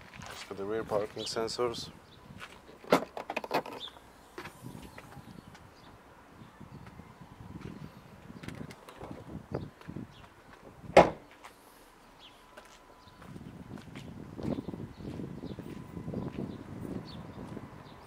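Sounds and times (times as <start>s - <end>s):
tailgate rattles: 2.7s - 3.9s, 10.9s - 11.3s
tailgate shutting thud: 10.9s - 11.3s.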